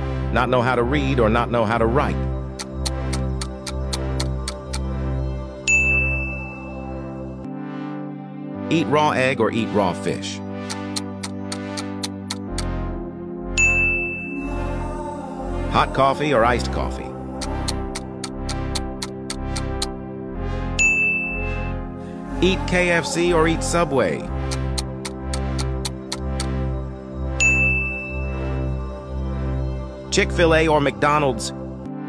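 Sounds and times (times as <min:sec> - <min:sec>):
background music: 0:00.0 - 0:32.0
bright ding: 0:05.7 - 0:06.8, 0:13.6 - 0:14.4, 0:20.8 - 0:21.7, 0:27.4 - 0:28.4.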